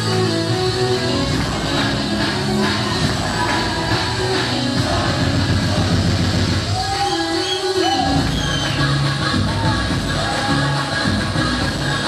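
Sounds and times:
loud dance music: 0.0 - 12.0.

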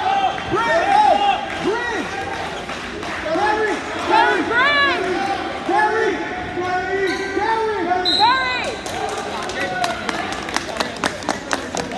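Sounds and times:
voices shouting in echoing gym: 0.0 - 10.3.

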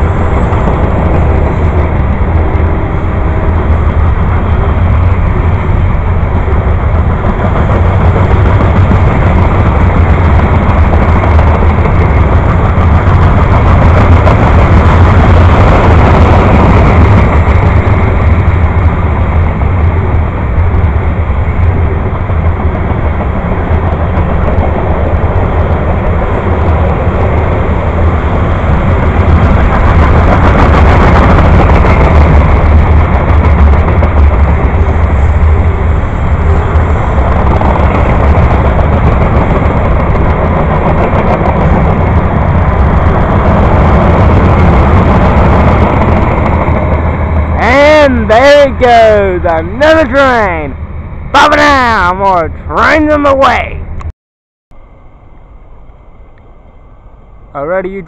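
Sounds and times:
freight train wheels rumbling: 0.0 - 54.1, 54.8 - 58.0.

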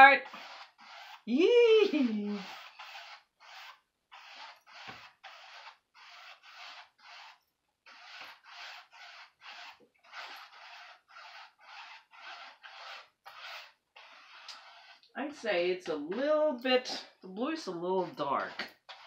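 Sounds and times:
paintbrush stroking on canvas: 0.0 - 19.0.

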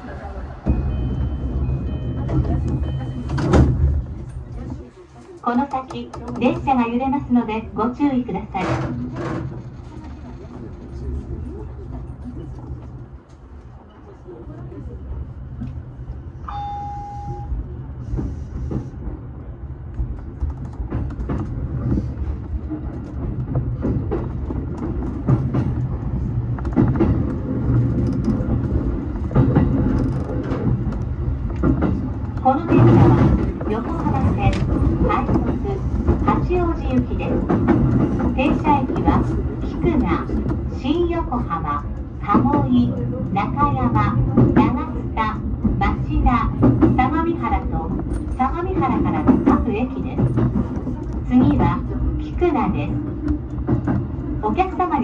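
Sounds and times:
electric train running rumble: 0.0 - 5.2, 5.8 - 55.0
short single-tone beep: 16.5 - 17.5.

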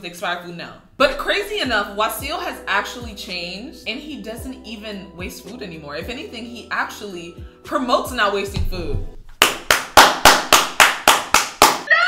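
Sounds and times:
quick hand claps: 9.4 - 11.9.

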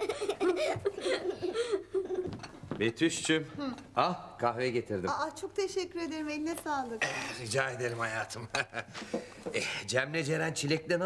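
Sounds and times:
children laughing: 0.0 - 2.3.

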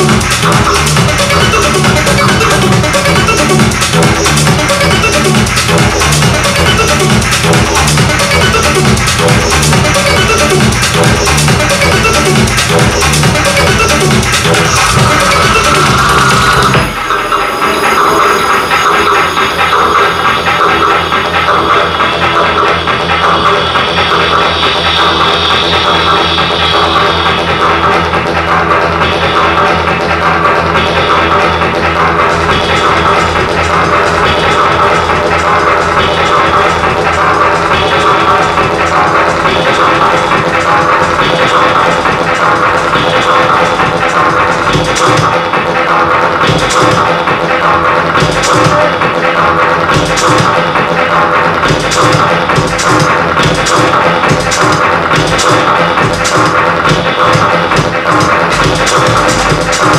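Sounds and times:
electronic dance music: 0.0 - 59.9.

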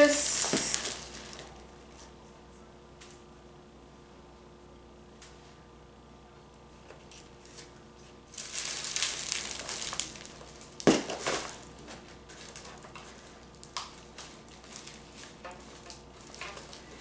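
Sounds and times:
paper rustling and crinkling: 0.0 - 2.1, 8.3 - 17.0.

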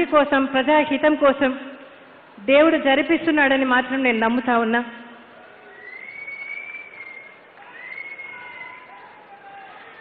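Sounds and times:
faint background noise: 0.0 - 10.0
high whistle: 5.7 - 9.2.

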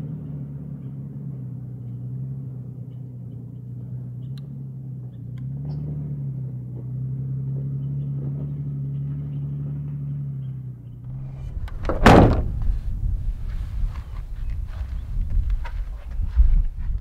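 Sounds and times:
car engine running: 0.0 - 17.0
loud sudden thump: 11.1 - 12.9.

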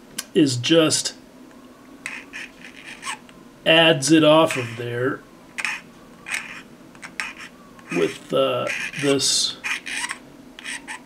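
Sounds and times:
knife scraping plastic: 2.0 - 3.2, 5.6 - 11.0.

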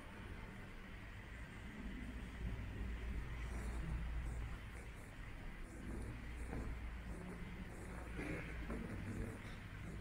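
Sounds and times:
low steady hall rumble: 0.0 - 10.0.

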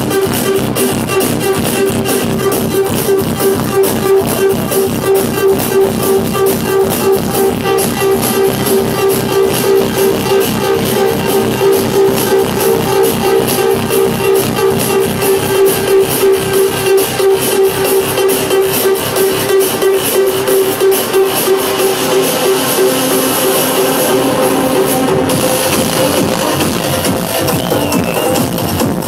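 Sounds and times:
electronic dance music: 0.0 - 29.0
kick-drum beat: 0.0 - 29.0
pulsing synth note: 0.1 - 28.2.

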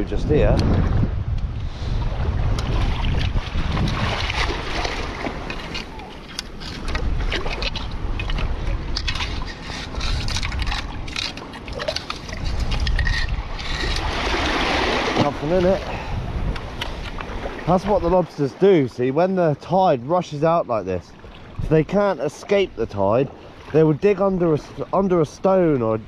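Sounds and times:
wind buffeting microphone: 0.0 - 18.3, 21.1 - 26.0
seawater sloshing and splashing: 1.8 - 18.7, 21.0 - 25.8.

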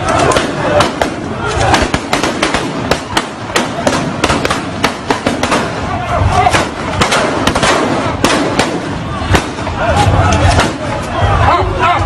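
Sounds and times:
rapid gunshots: 0.0 - 10.9
people shouting: 0.0 - 12.0.

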